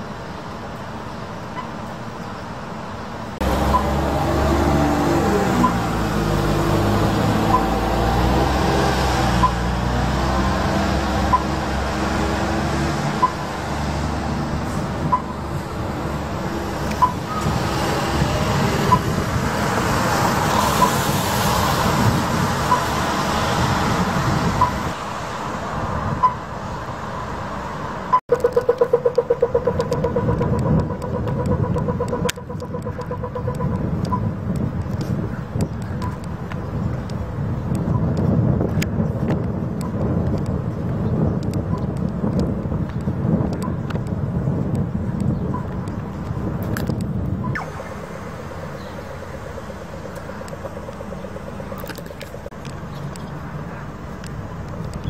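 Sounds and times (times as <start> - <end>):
bus engine accelerating: 0.0 - 42.5, 44.4 - 55.0
traffic on wet road: 0.0 - 55.0
rapid pulsing beep: 15.0 - 15.4.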